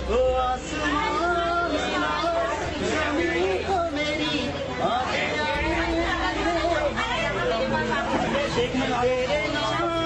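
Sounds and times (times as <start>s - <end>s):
man singing unaccompanied: 0.0s - 10.0s
people chattering: 0.0s - 10.0s.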